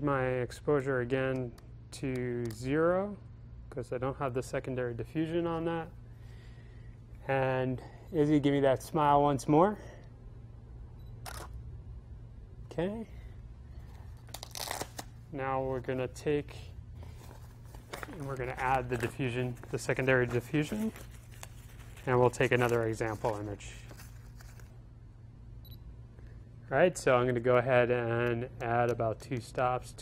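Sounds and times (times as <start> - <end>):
low steady hum: 0.0 - 30.0.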